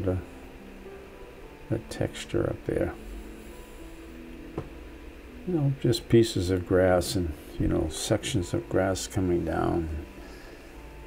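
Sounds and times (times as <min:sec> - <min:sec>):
faint steady tones: 0:00.0 - 0:11.0
low steady hum: 0:00.0 - 0:11.0.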